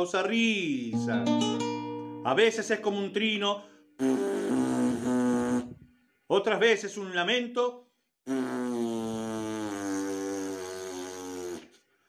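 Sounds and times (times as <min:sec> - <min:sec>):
long comic fart noise: 0:04.0 - 0:05.9, 0:08.2 - 0:11.8.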